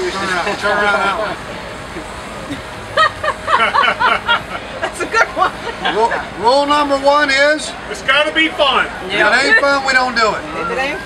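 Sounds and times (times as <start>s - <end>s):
people laughing: 0.1s - 6.4s.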